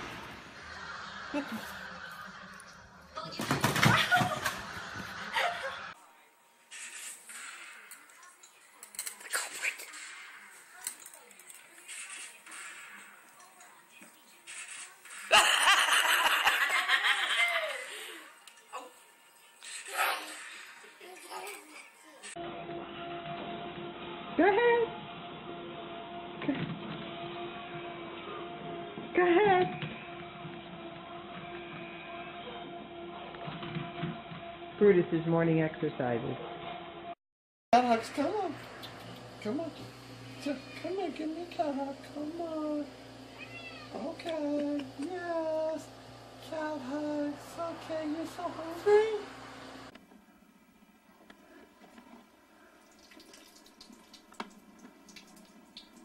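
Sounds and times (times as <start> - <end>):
treadmill motor humming: 0.0 - 6.0, 22.3 - 37.2, 37.8 - 50.0
water dripping into sink: 52.8 - 56.0.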